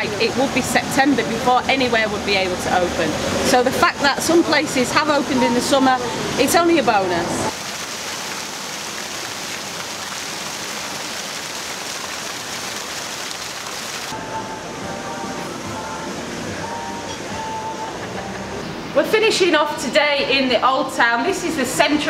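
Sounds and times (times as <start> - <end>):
fountain water splashing: 0.0 - 14.2.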